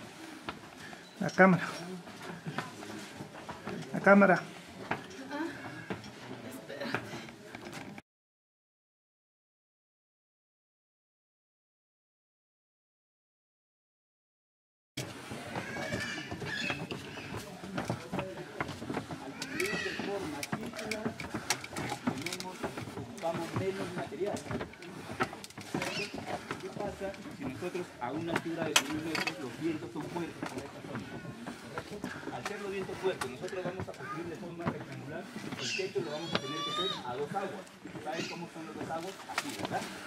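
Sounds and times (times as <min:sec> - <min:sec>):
people talking in background: 0:00.0 - 0:08.0, 0:15.0 - 0:40.0
clicks and handling knocks: 0:15.0 - 0:35.7.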